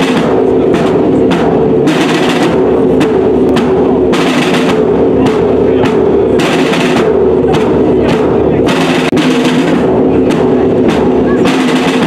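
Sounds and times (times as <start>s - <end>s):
steady drumming: 0.0s - 12.0s.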